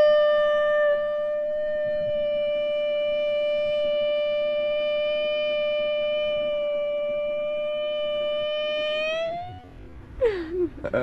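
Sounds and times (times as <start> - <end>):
steady tone with overtones: 0.0 - 11.0.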